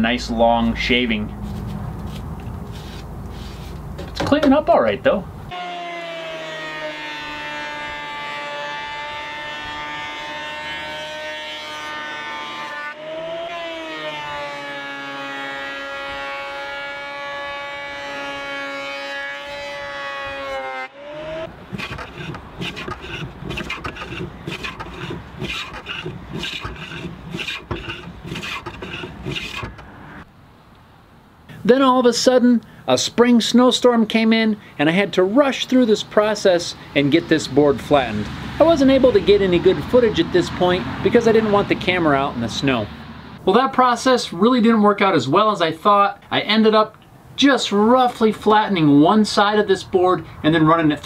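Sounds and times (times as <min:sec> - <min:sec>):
short strokes on wood: 0:01.4 - 0:03.8, 0:21.4 - 0:30.0
thickness planer whining: 0:05.5 - 0:30.3.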